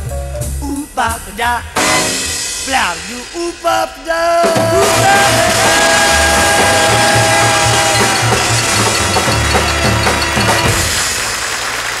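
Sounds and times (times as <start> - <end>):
drum kit fills: 0.0 - 12.0
big band held chord: 4.6 - 12.0.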